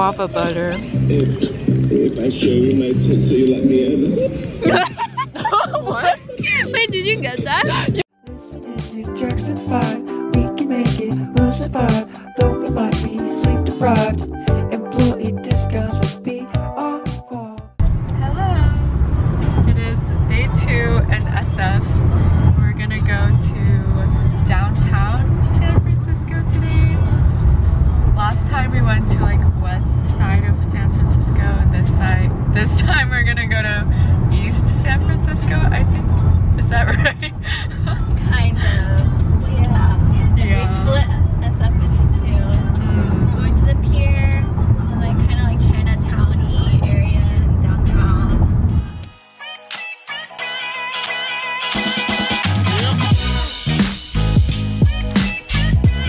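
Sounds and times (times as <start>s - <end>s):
music: 0.0s - 4.0s, 4.6s - 56.0s
people's voices: 0.0s - 8.0s, 36.6s - 48.4s
car cabin road rumble: 0.0s - 8.1s, 17.8s - 49.0s.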